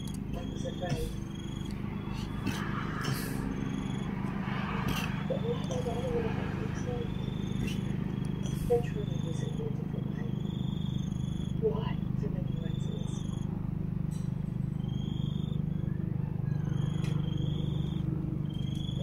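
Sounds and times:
faint high chirps: 0:00.0 - 0:19.0
helicopter rotor drone: 0:00.0 - 0:19.0.

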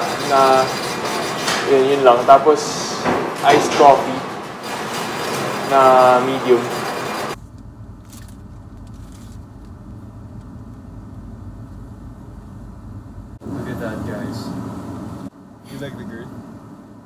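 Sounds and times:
people talking: 0:00.0 - 0:00.8, 0:01.6 - 0:04.3, 0:05.7 - 0:06.8, 0:13.4 - 0:14.6, 0:15.7 - 0:16.4
car cabin hum: 0:07.4 - 0:17.0.

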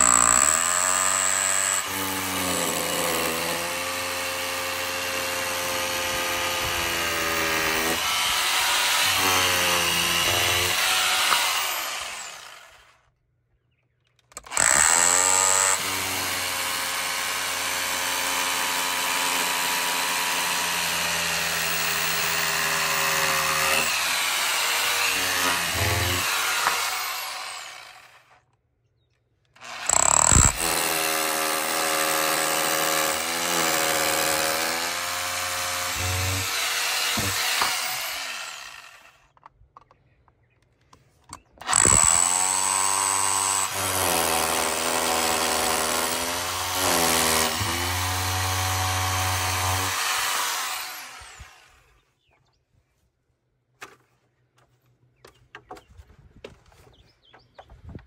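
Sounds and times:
hammer drill boring into brick: 0:00.0 - 0:13.0, 0:14.3 - 0:28.4, 0:29.5 - 0:39.4, 0:41.6 - 0:51.9.

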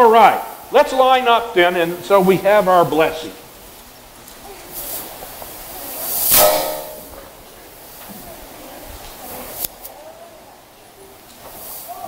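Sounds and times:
people rustling and shuffling: 0:00.6 - 0:12.0.

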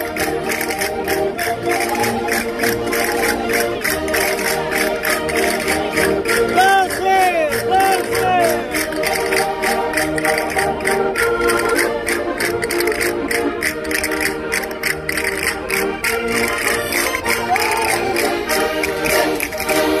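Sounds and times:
concertinas playing folk dance tune: 0:00.0 - 0:20.0
voices: 0:06.4 - 0:09.2.

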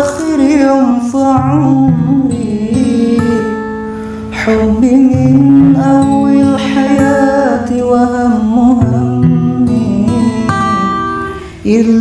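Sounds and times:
woman singing: 0:00.0 - 0:03.6, 0:04.4 - 0:12.0
acoustic guitar: 0:00.0 - 0:12.0.

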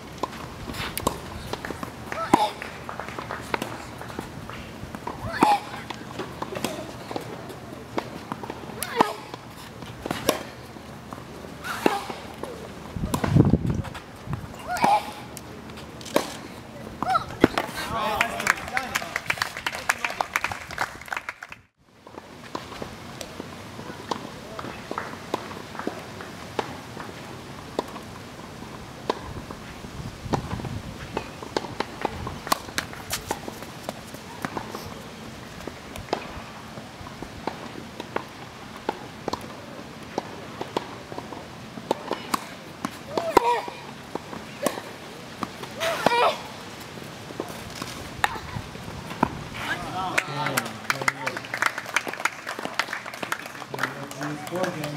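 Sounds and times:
outdoor background noise: 0:00.0 - 0:54.9
tennis balls bouncing and struck: 0:00.2 - 0:18.9, 0:22.0 - 0:29.6, 0:30.3 - 0:54.9.

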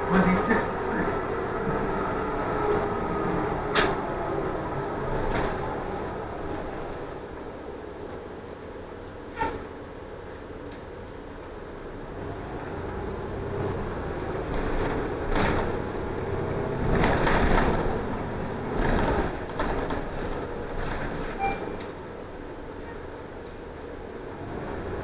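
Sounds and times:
bus engine and road rumble: 0:00.0 - 0:25.0.

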